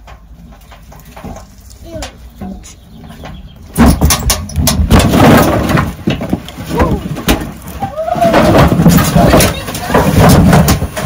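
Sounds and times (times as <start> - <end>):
logs and metal tray rattling: 0.0 - 11.0
wheelbarrow wheel rumbling on wood: 0.0 - 11.0.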